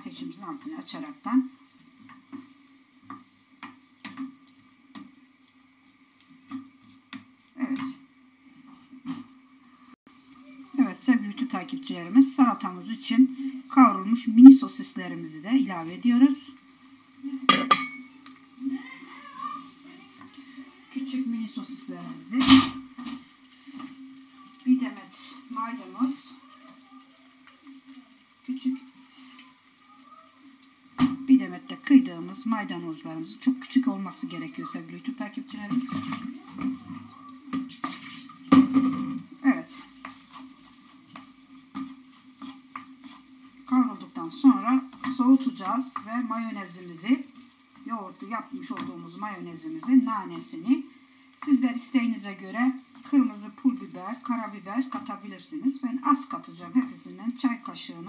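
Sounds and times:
wooden spoon stirring in frying pan: 0.0 - 9.4, 10.1 - 58.0
food sizzling: 0.0 - 58.0
spoon knocking on pan: 17.5 - 18.1.

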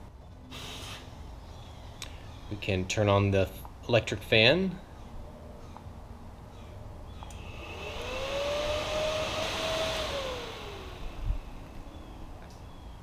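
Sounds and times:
electric cooling fan whining: 7.0 - 13.0.

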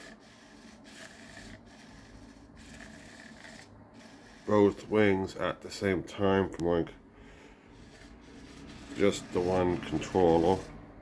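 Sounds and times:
servo motors whirring: 0.0 - 4.8.

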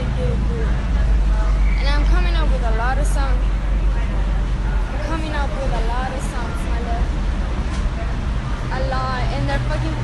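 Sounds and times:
vehicle rumble: 0.0 - 10.0
young woman talking: 1.7 - 3.5, 4.9 - 7.1, 8.7 - 10.0.

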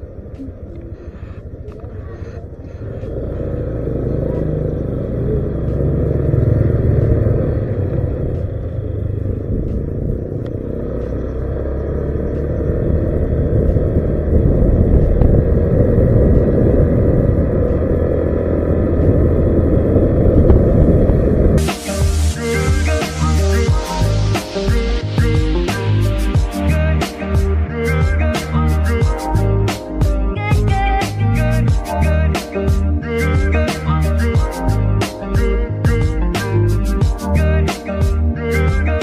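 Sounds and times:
wind rumble on microphone: 0.0 - 21.7
road noise: 0.0 - 39.0
scooter engine: 0.0 - 39.0.

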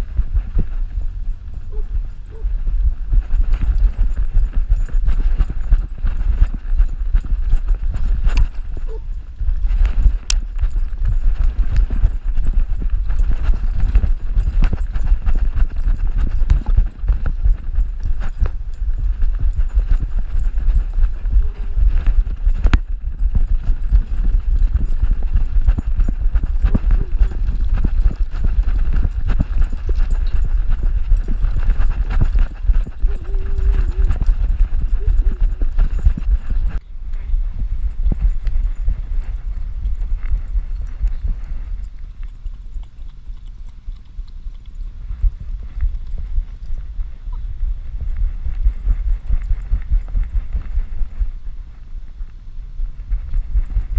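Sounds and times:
fur and harness rubbing on camera: 0.0 - 36.8, 37.6 - 51.6.

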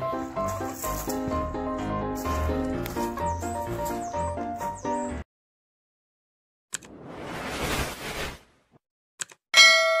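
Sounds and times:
bright bell-like ding: 9.6 - 10.0.

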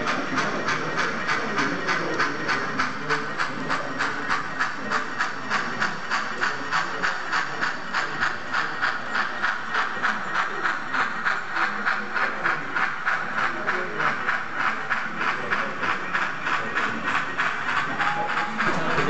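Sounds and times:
model steam locomotive chuffing: 0.0 - 19.0.

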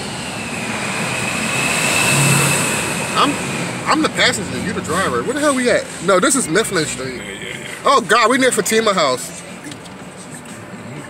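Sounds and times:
faint high whine: 0.0 - 4.4
car road and engine noise: 0.0 - 11.0.

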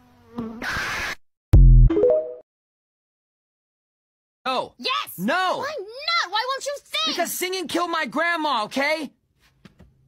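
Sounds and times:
bee buzzing: 0.0 - 0.7
deep bass note: 1.6 - 1.9.

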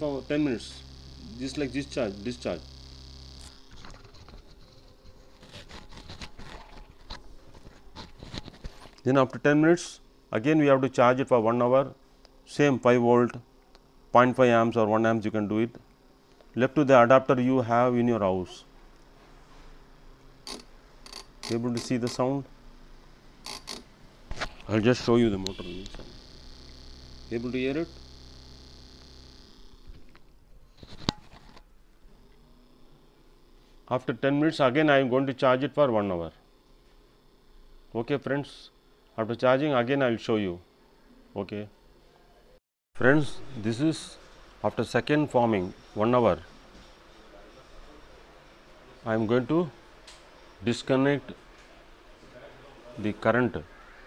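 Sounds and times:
small motor humming faintly: 0.0 - 8.9, 20.4 - 33.8
small motor whining: 0.1 - 4.1, 25.4 - 29.9.

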